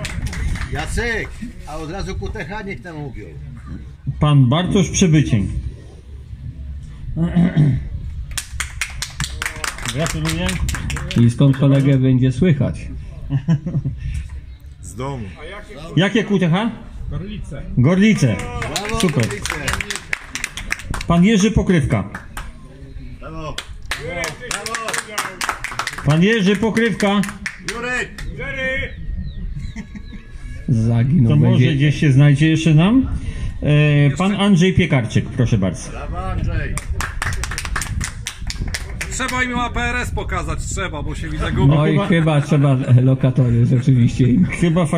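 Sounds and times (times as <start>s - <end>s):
people clapping: 0.0s - 1.1s, 8.3s - 12.0s, 18.1s - 21.2s, 21.9s - 22.6s, 23.6s - 28.4s, 36.7s - 39.5s.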